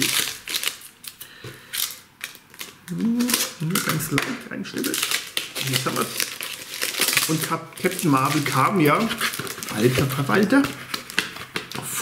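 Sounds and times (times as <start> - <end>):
cardboard and tape rustling: 2.5 - 12.0.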